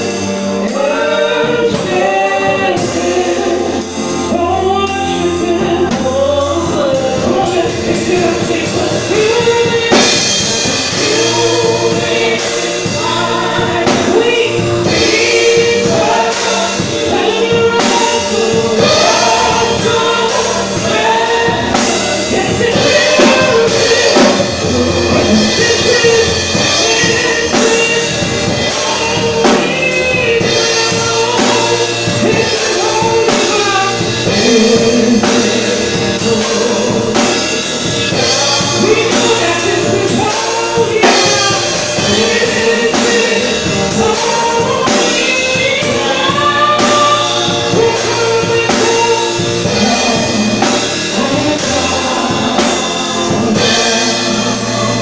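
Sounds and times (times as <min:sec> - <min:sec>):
drum kit: 0:00.0 - 0:55.0
electronic keyboard: 0:00.0 - 0:55.0
man and women singing: 0:00.0 - 0:55.0.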